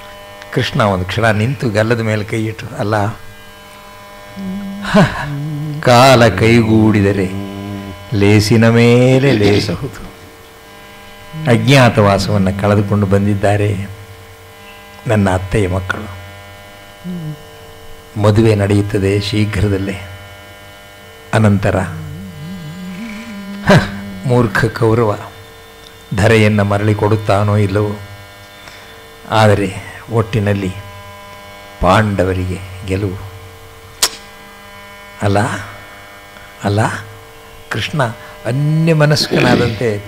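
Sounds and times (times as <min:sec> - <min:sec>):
electrical mains hum: 0:00.0 - 0:40.0
man's short syllable: 0:04.4 - 0:08.5, 0:11.4 - 0:13.0, 0:21.8 - 0:25.0
person speaking: 0:04.4 - 0:10.1, 0:11.3 - 0:13.9, 0:17.1 - 0:17.5, 0:21.4 - 0:25.2, 0:38.5 - 0:39.9
sharp click: 0:34.0 - 0:34.3.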